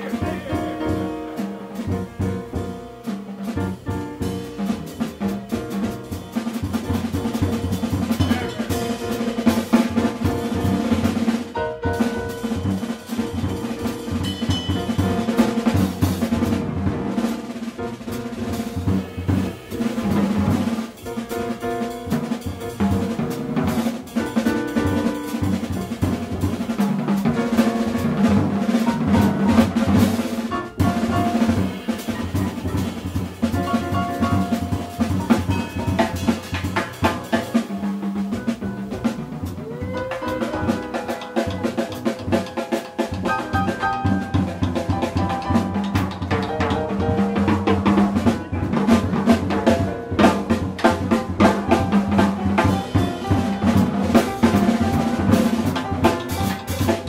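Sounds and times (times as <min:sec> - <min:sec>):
drum kit playing: 0:00.0 - 0:57.0
piano chords: 0:00.0 - 0:57.0.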